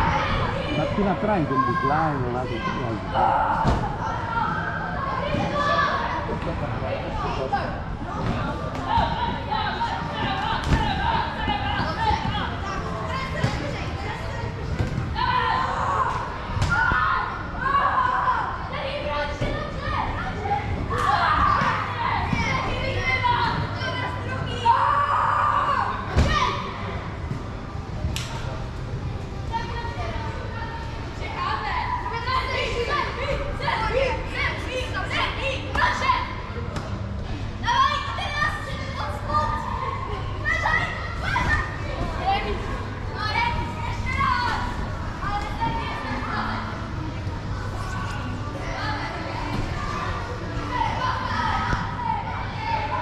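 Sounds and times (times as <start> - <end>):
children shouting and playing: 0.0 - 27.4, 29.3 - 53.0.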